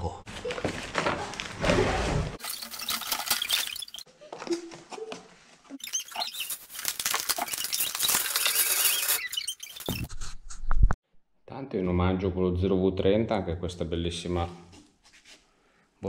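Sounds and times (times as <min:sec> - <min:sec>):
plastic packaging crinkling: 0:02.4 - 0:04.1, 0:05.8 - 0:09.9.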